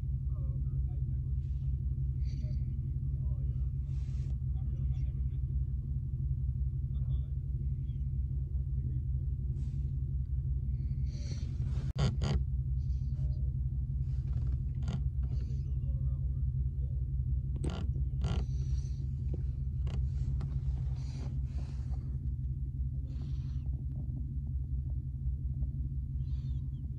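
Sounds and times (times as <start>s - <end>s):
car engine idling: 0.0s - 26.9s.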